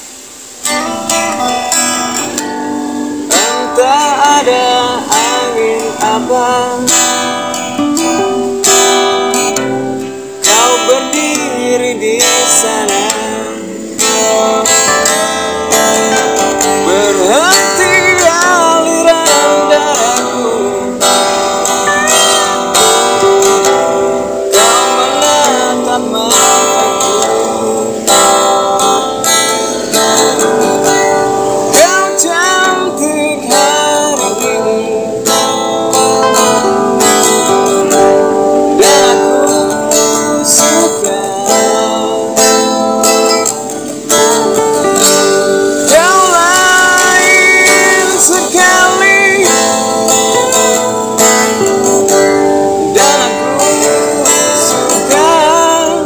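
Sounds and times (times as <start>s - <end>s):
acoustic guitar strummed: 0.0s - 56.0s
man singing: 3.2s - 56.0s.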